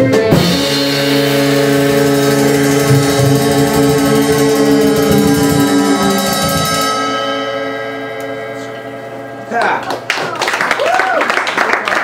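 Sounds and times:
jazz band final chord: 0:00.0 - 0:09.5
audience applause: 0:09.6 - 0:12.0
audience whooping and cheering: 0:10.0 - 0:12.0.

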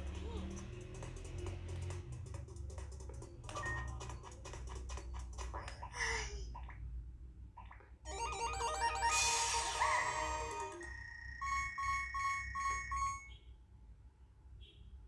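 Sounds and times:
held electronic tone: 0:08.1 - 0:13.4
short electronic beeps: 0:10.7 - 0:13.5.

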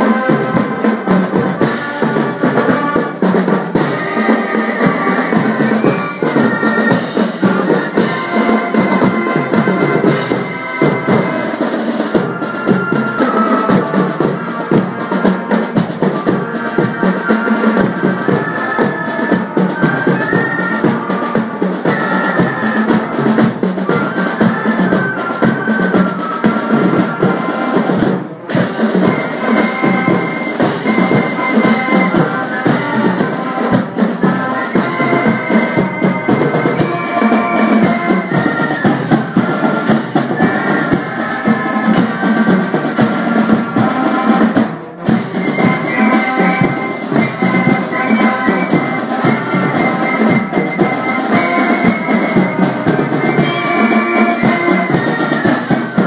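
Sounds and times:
bass and snare drums: 0:00.0 - 0:56.0
marching band playing: 0:00.0 - 0:56.0
saxophones melody: 0:00.0 - 0:56.0.

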